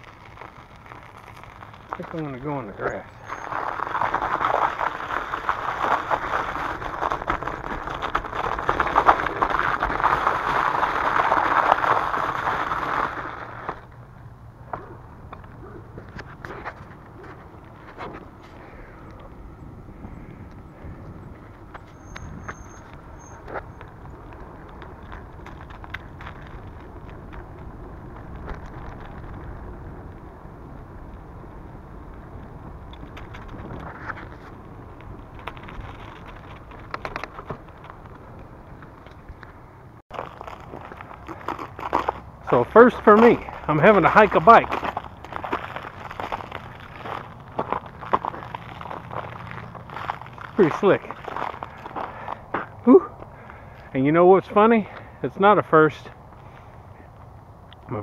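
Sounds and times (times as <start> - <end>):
bicycle tyres crunching on ice: 0.0 - 58.0
bicycle tyres rolling: 0.0 - 58.0.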